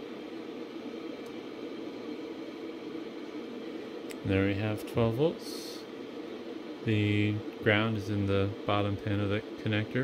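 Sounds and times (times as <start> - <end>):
server cooling fans whirring: 0.0 - 10.0.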